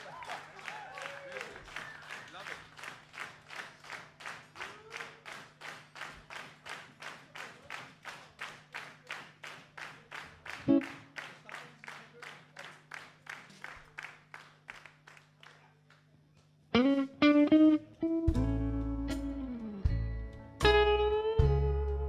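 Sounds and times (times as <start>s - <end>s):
audience clapping in unison: 0.0s - 16.6s
plucked electric guitar note: 16.8s - 22.0s.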